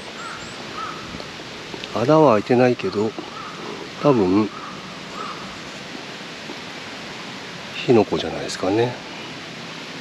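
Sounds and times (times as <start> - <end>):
outdoor ambience hiss: 0.0 - 10.0.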